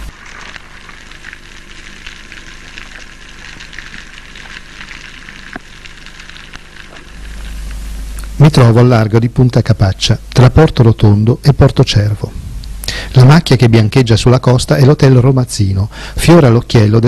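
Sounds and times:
steady low hum: 0.0s - 17.0s
crackling of tiny clicks: 0.2s - 8.4s.

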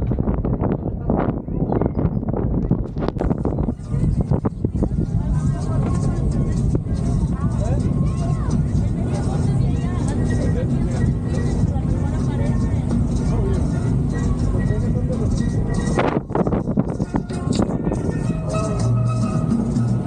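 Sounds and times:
boat engine rumbling: 0.0s - 20.0s
indistinct chatter of passengers: 0.0s - 20.0s.

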